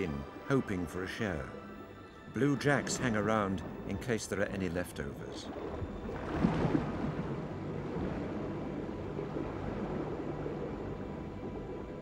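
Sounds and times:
underwater rushing water: 0:00.0 - 0:12.0.

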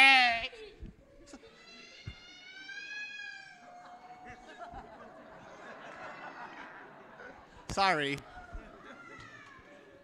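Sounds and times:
man speaking: 0:07.7 - 0:08.2.

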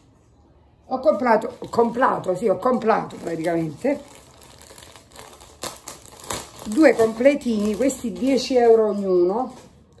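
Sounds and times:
packaging crinkling: 0:01.5 - 0:10.0.

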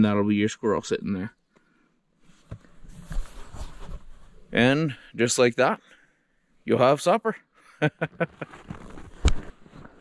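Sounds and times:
camera handling rustle and knocks: 0:08.3 - 0:10.0.

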